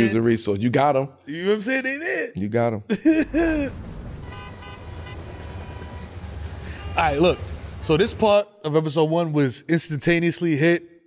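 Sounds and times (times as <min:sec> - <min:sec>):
low steady rumble: 0:03.3 - 0:08.3
short horn-like toot: 0:04.2 - 0:07.4.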